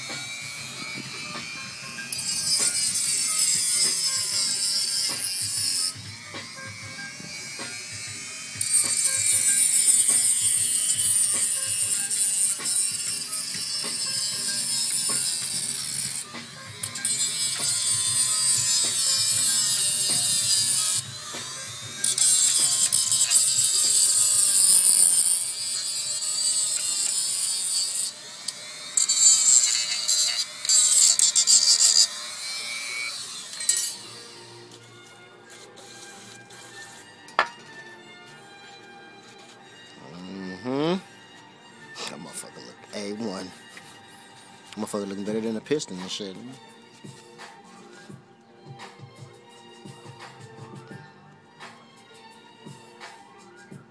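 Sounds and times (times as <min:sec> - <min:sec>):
background music with steady beat: 0:00.0 - 0:27.3, 0:28.1 - 0:53.9
grinder cutting metal: 0:00.0 - 0:41.0.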